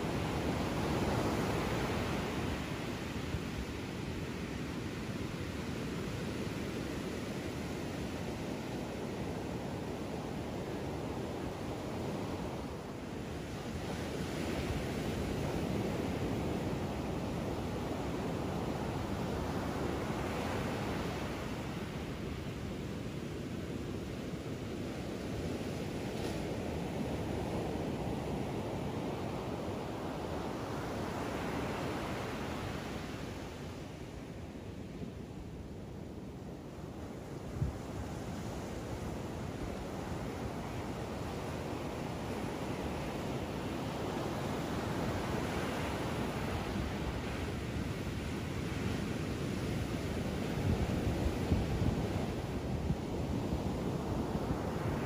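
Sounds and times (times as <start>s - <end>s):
ocean surf breaking on beach: 0.0s - 55.0s.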